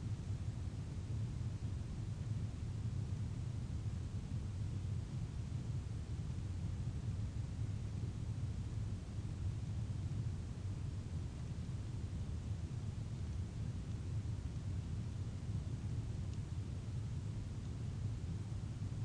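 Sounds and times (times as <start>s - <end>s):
low room rumble: 0.0s - 19.0s.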